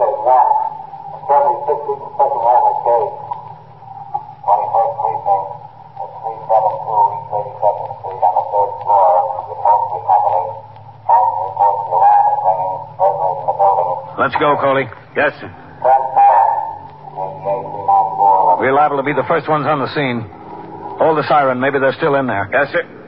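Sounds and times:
man speaking over police radio: 0:00.0 - 0:23.0
steady low hum: 0:00.0 - 0:23.0.

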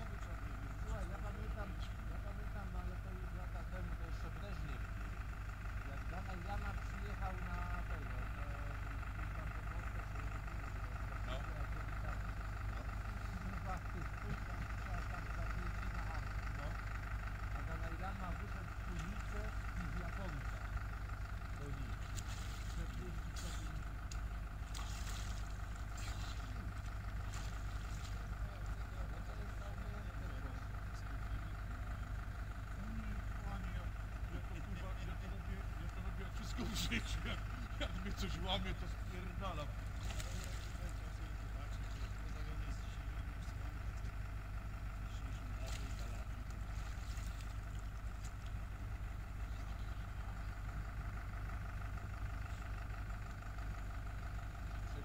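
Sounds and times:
constant hum: 0:00.0 - 0:55.0
low outdoor rumble: 0:00.0 - 0:55.0.

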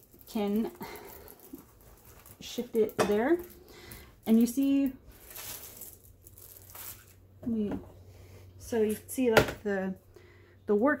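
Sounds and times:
canvas rustling and crinkling: 0:00.0 - 0:03.6, 0:05.1 - 0:07.2.

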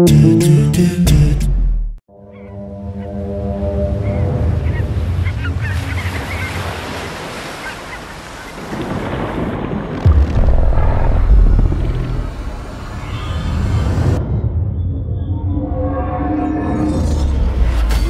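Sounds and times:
wind: 0:02.1 - 0:18.0
ocean surf: 0:03.6 - 0:14.2
deep boom: 0:10.0 - 0:12.7.

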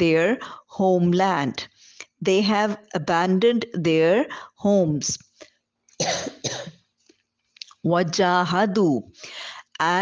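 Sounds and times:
woman coughing: 0:06.0 - 0:06.8.

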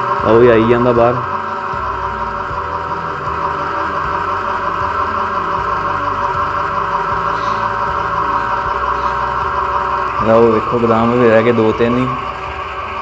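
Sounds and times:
grinding and hissing: 0:00.0 - 0:13.0
oil press motor hum and whine: 0:00.0 - 0:13.0.

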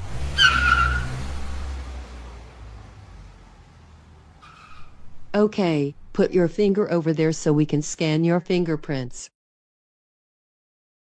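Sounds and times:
tyres screeching: 0:00.0 - 0:01.8, 0:04.3 - 0:05.3
car engine rumble: 0:00.0 - 0:06.6.

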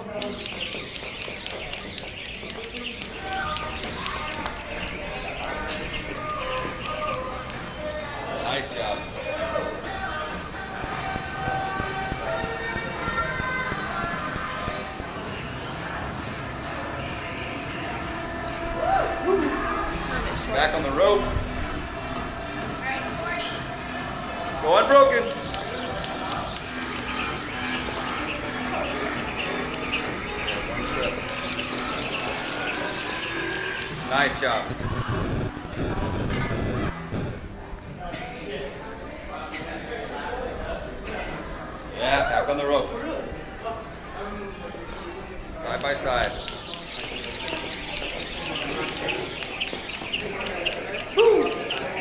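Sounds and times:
skipping ropes slapping floor: 0:00.0 - 0:07.7, 0:25.2 - 0:34.1, 0:45.8 - 0:52.0
background music: 0:00.0 - 0:38.0, 0:45.6 - 0:52.0.

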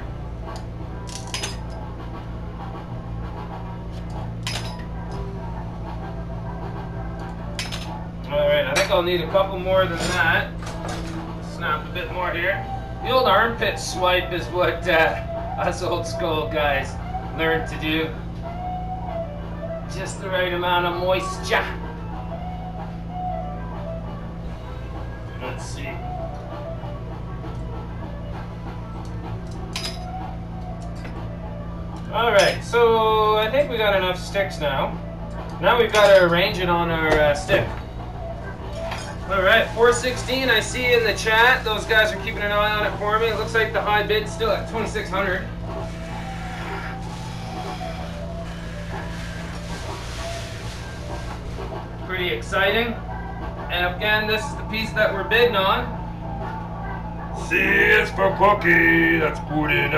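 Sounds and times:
steady low hum: 0:00.0 - 0:59.9
glass rods clicking and clinking: 0:00.6 - 0:01.8, 0:04.4 - 0:04.9, 0:07.6 - 0:07.9, 0:29.5 - 0:30.1
glass rods snapping: 0:01.1 - 0:01.7.

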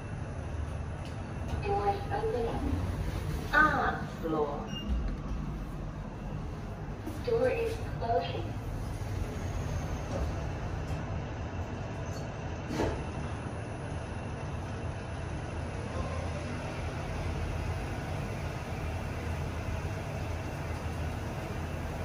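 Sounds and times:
lift car rumble: 0:00.0 - 0:22.0.

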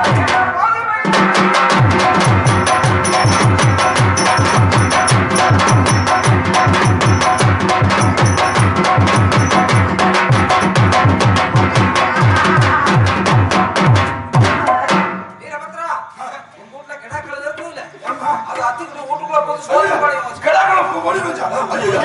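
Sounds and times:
fast drumming: 0:00.0 - 0:15.3
held instrumental tones: 0:01.9 - 0:12.1.

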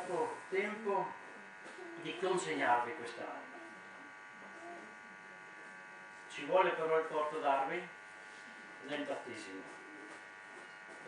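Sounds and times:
electrical buzz: 0:00.0 - 0:11.0.

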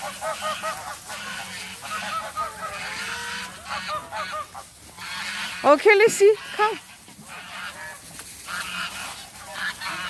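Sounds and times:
geese honking: 0:00.0 - 0:10.0.

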